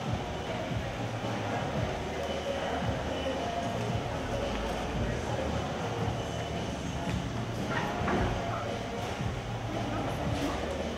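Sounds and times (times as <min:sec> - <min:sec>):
steady low hum: 0:00.0 - 0:10.9.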